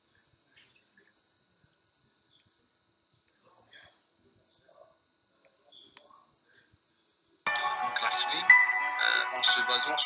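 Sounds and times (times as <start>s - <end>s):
faint steady high tone: 7.5s - 10.0s.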